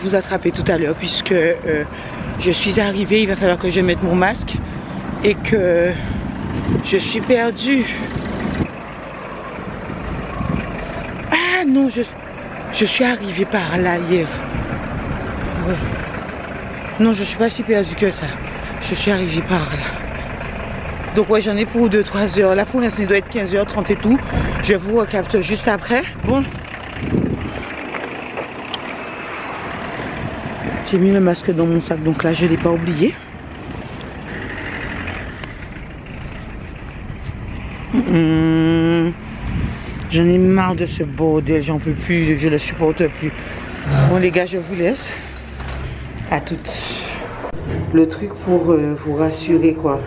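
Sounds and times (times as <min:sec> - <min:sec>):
road traffic rumble: 0:00.0 - 0:50.0
wind buffeting microphone: 0:03.7 - 0:07.1, 0:07.9 - 0:09.0, 0:09.6 - 0:11.3, 0:26.2 - 0:27.9, 0:29.9 - 0:30.8, 0:39.2 - 0:42.5.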